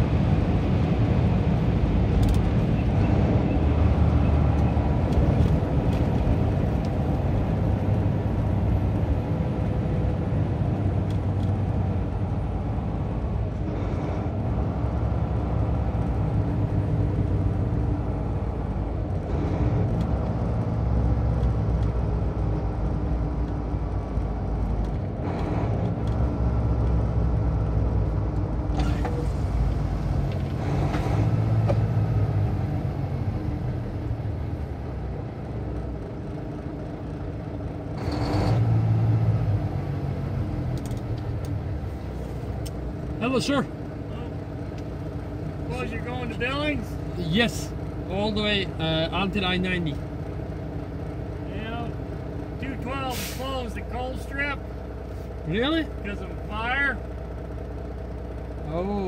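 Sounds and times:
vehicle engine and tyre rumble: 0:00.0 - 0:59.0.

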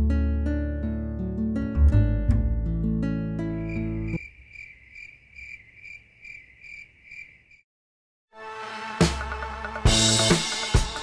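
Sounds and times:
cricket chirping: 0:03.6 - 0:07.6.

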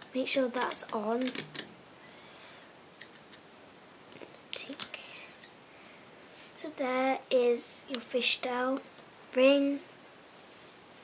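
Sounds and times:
rubber bands snapping and rustling: 0:00.0 - 0:01.8, 0:04.1 - 0:05.0
soft plastic clicks: 0:04.1 - 0:05.6.

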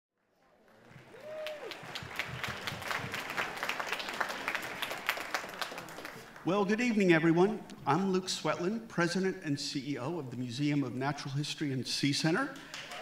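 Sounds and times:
audience applause: 0:00.4 - 0:06.5, 0:12.6 - 0:13.0.

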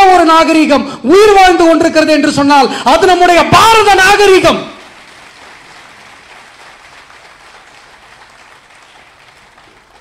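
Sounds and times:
audience applauding: 0:04.8 - 0:10.0.

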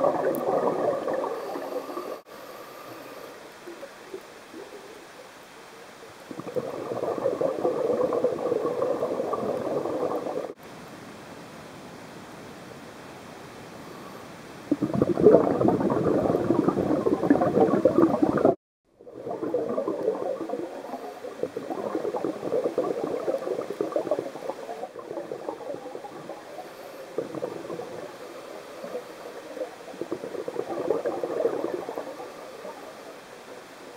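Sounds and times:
underwater exhaled bubbles: 0:00.0 - 0:02.3, 0:06.2 - 0:10.6, 0:14.7 - 0:33.4.

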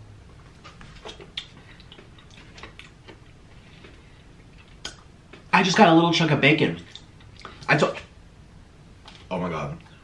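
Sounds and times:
mouth clicks and lip smacks: 0:01.0 - 0:03.3, 0:04.6 - 0:05.5, 0:06.9 - 0:07.7.

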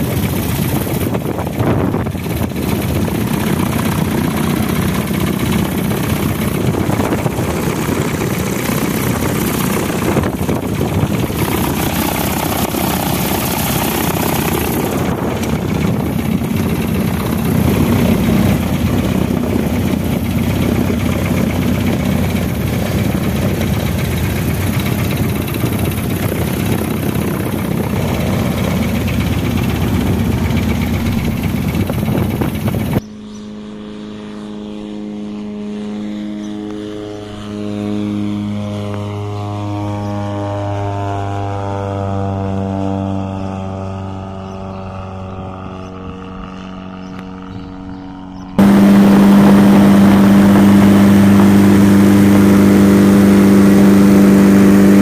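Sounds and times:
wind noise: 0:00.0 - 0:33.0, 0:48.5 - 0:55.0
aircraft engine and propeller: 0:00.0 - 0:55.0
aircraft engine drone overhead: 0:00.0 - 0:55.0.

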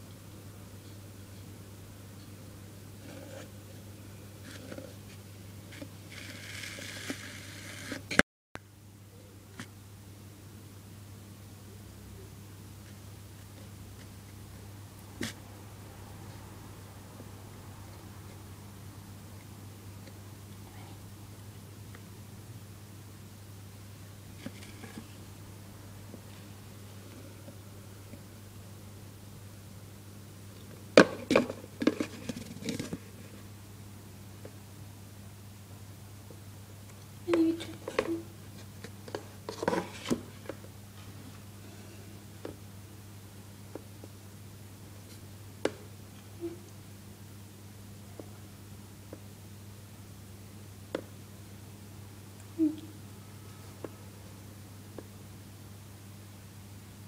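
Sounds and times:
steady low hum: 0:00.0 - 0:57.0
plastic container rustling and scraping: 0:31.2 - 0:33.4, 0:37.6 - 0:40.6.

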